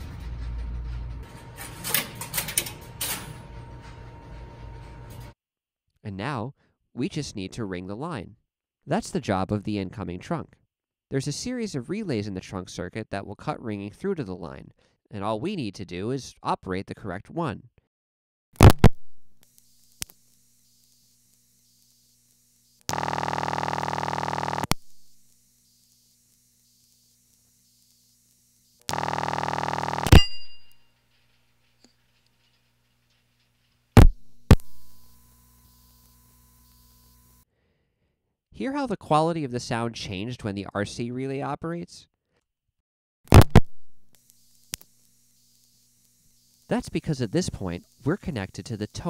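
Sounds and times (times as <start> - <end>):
rough ringing tone bursts: 25.5 - 31.1.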